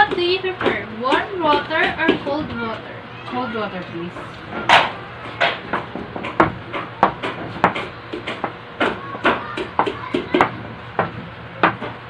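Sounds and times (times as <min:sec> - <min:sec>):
sharp clicks and knocks: 0:04.2 - 0:12.0.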